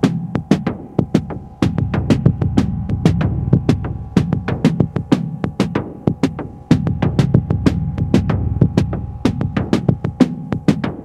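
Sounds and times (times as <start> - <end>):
low bass line: 0.0 - 10.2
electronic drum beat: 0.0 - 11.0.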